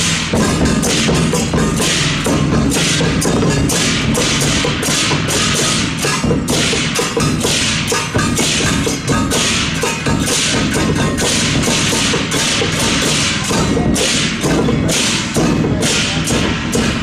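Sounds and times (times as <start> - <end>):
hand cymbals clashing: 0.0 - 17.0.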